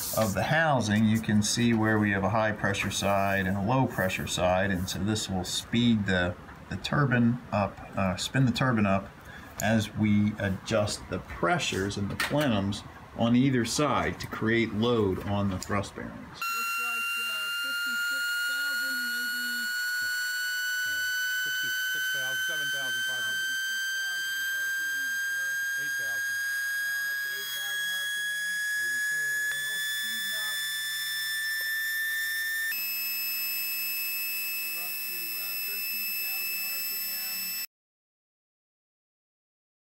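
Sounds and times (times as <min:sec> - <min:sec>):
high-pitched spindle whine: 0:16.4 - 0:37.7.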